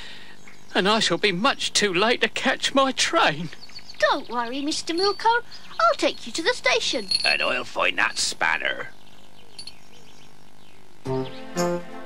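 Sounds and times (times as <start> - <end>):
steady low hiss: 0.0 - 12.0
bird chirps: 3.4 - 6.4, 7.1 - 11.6.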